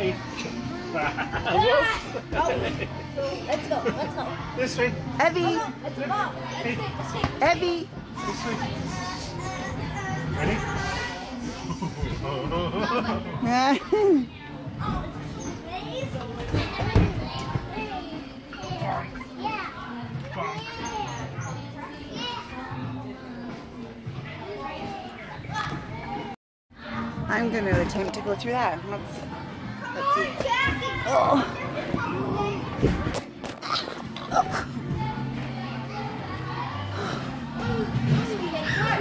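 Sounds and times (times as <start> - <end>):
children playing and talking: 0.0 - 39.0
children shouting and squealing: 38.4 - 39.0.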